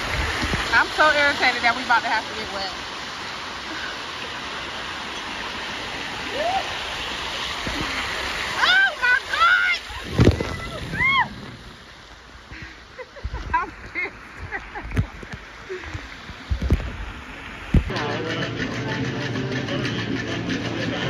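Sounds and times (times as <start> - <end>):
water pouring into pool: 0.0 - 12.6
water splashing on phone: 7.5 - 11.8.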